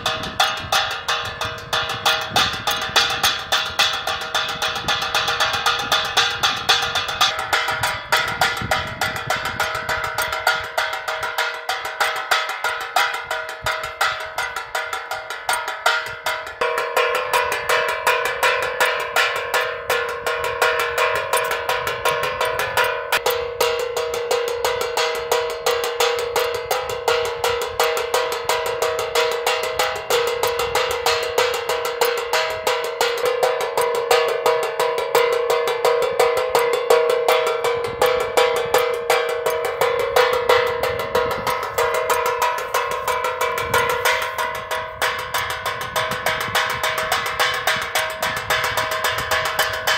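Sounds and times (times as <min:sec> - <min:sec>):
metallic clanging with bell-like ring: 0:00.0 - 0:49.9.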